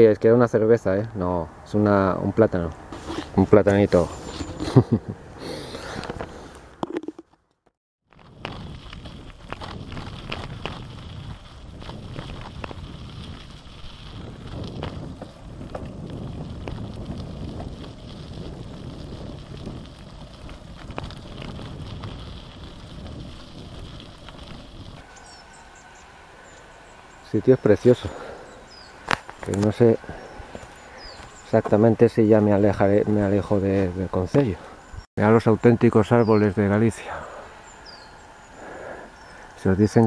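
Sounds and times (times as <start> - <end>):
bike tyres on gravel: 2.6 - 7.3, 8.0 - 40.0
person laughing: 4.5 - 5.6.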